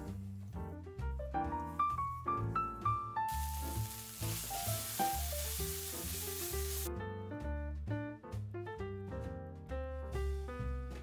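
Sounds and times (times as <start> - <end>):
background piano music: 0.0 - 11.0
food sizzling in a hot pan: 3.3 - 6.9.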